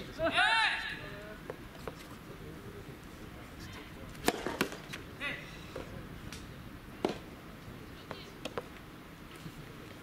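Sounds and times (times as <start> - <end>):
player shouting: 0.2 - 1.0
racket hitting ball: 4.2 - 5.0, 7.0 - 7.3.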